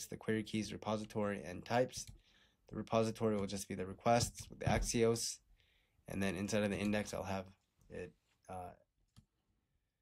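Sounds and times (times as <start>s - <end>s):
person speaking: 6.1s - 8.8s.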